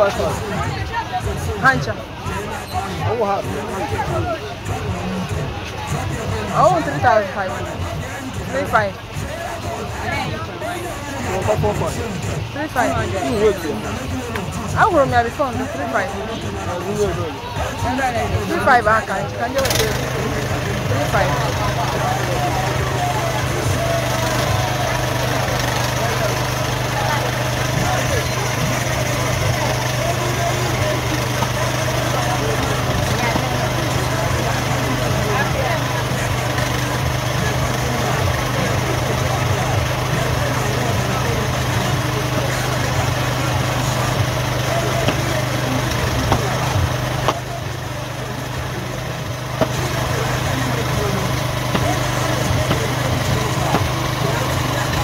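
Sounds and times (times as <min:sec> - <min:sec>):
chatter of market voices: 0:00.0 - 0:55.0
small engine running: 0:10.6 - 0:55.0.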